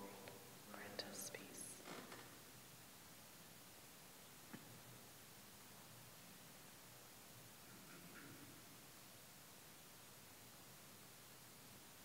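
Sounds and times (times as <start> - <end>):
man whispering: 0.0 - 1.8.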